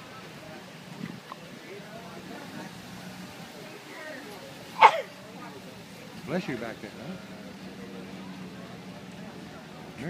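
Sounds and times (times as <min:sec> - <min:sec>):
faint background voices: 0:00.0 - 0:10.0
truck engine rolling past: 0:00.0 - 0:10.0.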